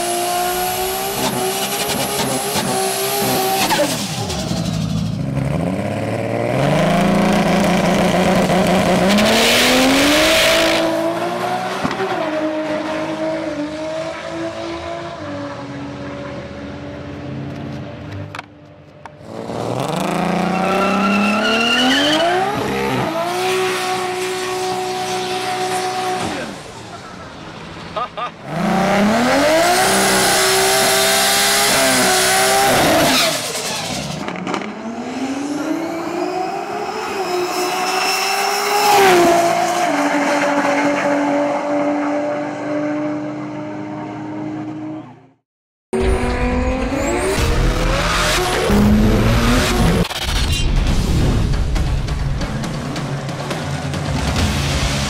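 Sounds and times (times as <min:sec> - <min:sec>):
car engine revving: 0:00.0 - 0:18.1, 0:19.2 - 0:27.8, 0:28.4 - 0:45.1, 0:46.0 - 0:50.6.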